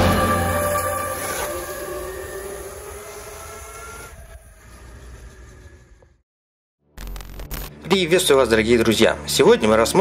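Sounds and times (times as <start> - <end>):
electric motor whine: 0.0 - 6.2.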